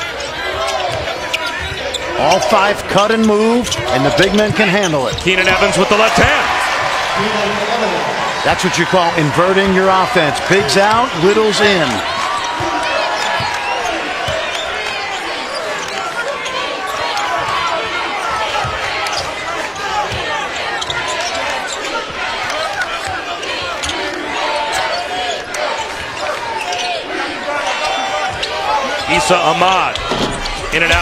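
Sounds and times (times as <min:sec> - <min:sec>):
arena crowd voices: 0:00.0 - 0:31.0.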